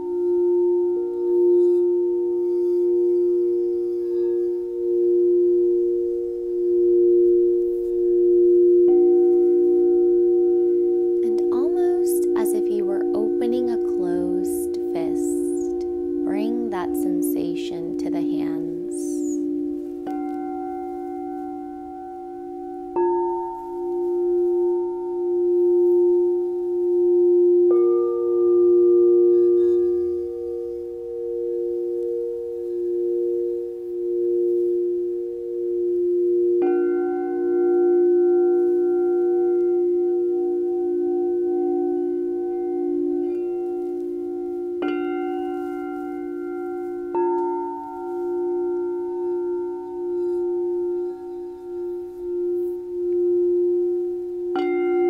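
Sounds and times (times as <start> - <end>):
singing bowls ringing: 0.0 - 55.0.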